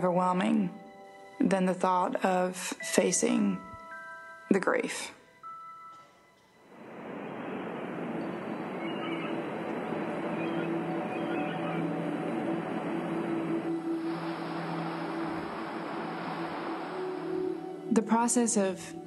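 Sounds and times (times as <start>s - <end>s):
soft sustained music tones: 0.0s - 19.0s
ocean surf washing onto beach: 6.8s - 18.4s.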